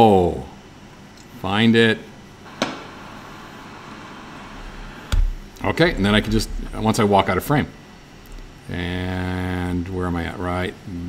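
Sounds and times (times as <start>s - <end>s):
wooden cabinet door shutting: 5.1s - 6.5s.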